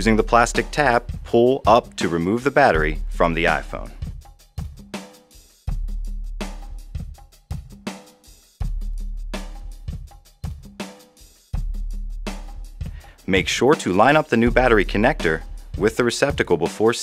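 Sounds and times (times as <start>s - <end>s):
music with drum-kit beat: 0.0s - 17.0s.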